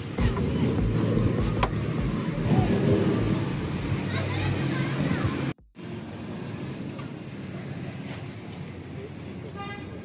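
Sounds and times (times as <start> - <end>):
roadside traffic rumble: 0.0 - 10.0
vehicle horn toot: 9.5 - 10.0.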